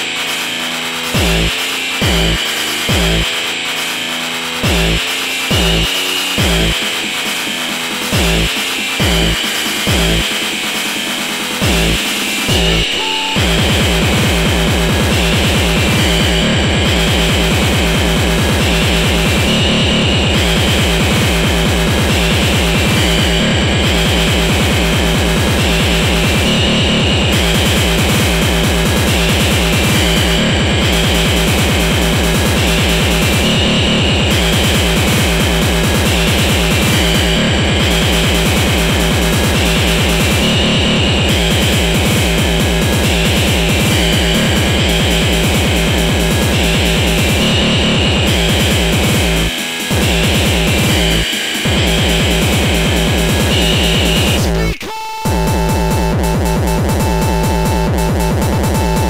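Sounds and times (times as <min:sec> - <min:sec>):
fast electronic kick-drum beat: 0:00.0 - 0:59.0
harsh noisy synth: 0:00.0 - 0:59.0.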